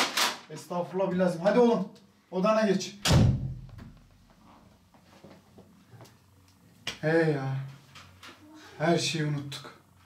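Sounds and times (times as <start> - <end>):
door shutting thud: 3.0 - 4.0.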